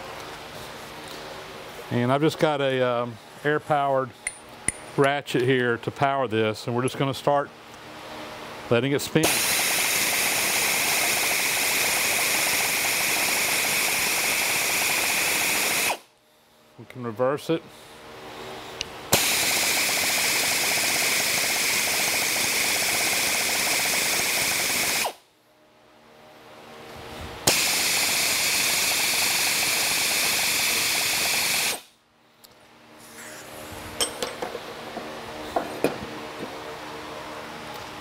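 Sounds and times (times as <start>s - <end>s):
air ratchet whirring and hissing: 9.2s - 16.0s, 19.1s - 25.2s, 27.5s - 31.9s.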